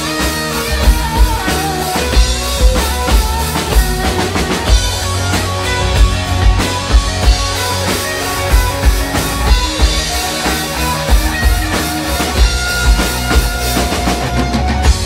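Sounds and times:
bass: 0:00.0 - 0:15.0
drum kit beat: 0:00.0 - 0:15.0
electric lead guitar solo: 0:00.0 - 0:15.0.

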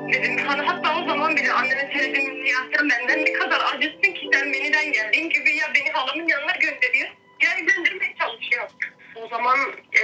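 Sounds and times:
woman talking over telephone: 0:00.0 - 0:10.0.

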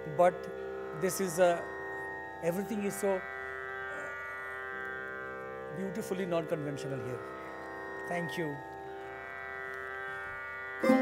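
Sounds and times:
tanpura drone: 0:00.0 - 0:11.0.

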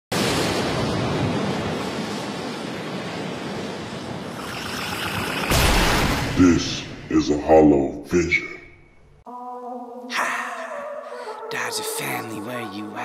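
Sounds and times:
rushing noise: 0:00.1 - 0:07.1
sudden loud hit: 0:05.5 - 0:07.0.

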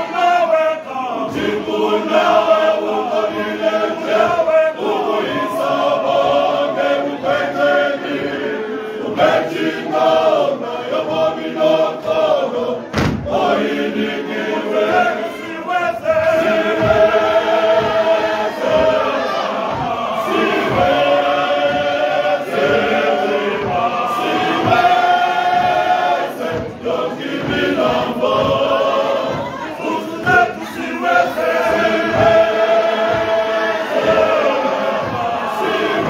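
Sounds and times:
male voice choir singing: 0:00.0 - 0:36.0.

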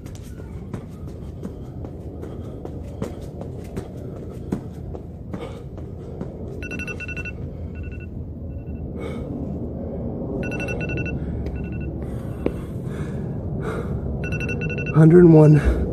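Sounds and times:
heavy gasping breaths: 0:00.4 - 0:06.4, 0:12.0 - 0:14.2
timer alarm beeping: 0:06.6 - 0:08.9, 0:10.4 - 0:12.0, 0:14.2 - 0:15.3.

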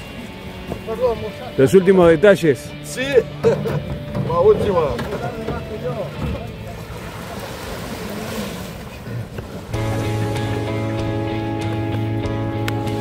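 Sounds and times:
music with long held notes: 0:00.0 - 0:06.8, 0:09.8 - 0:13.0
small waves on sandy shore: 0:06.6 - 0:10.7.

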